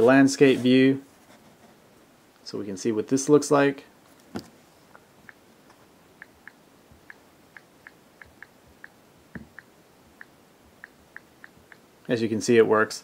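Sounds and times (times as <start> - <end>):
on-screen keyboard ticks: 6.2 - 11.8.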